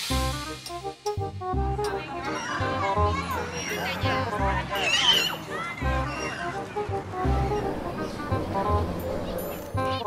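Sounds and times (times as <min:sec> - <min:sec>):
background music with bass pulse: 0:00.0 - 0:02.1, 0:06.8 - 0:10.0
children shouting at play: 0:02.0 - 0:08.2.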